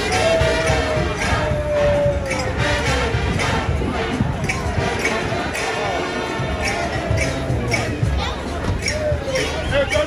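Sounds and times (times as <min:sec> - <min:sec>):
brass band playing: 0:00.0 - 0:08.5
drum beat: 0:00.0 - 0:10.0.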